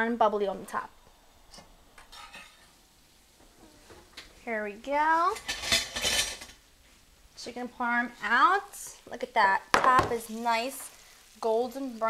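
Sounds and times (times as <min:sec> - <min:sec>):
kitchen clicks and clatter: 0:05.3 - 0:06.6.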